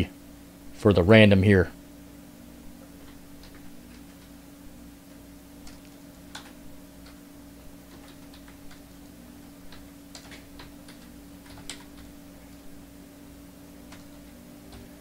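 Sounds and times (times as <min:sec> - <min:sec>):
steady low hum: 0:00.0 - 0:15.0
keyboard and mouse clicking: 0:05.6 - 0:07.2, 0:07.9 - 0:08.8, 0:09.7 - 0:12.1, 0:13.9 - 0:14.9.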